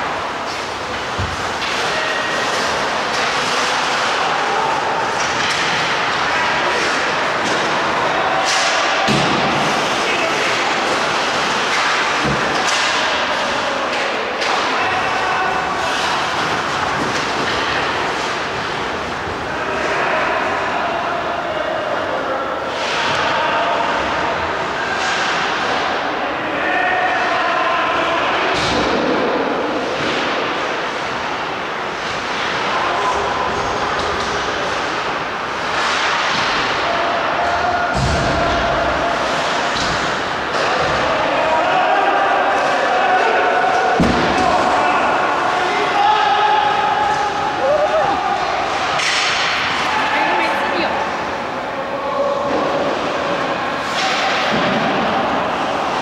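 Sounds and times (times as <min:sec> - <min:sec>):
players shouting: 0:00.0 - 0:31.0, 0:32.2 - 0:56.0.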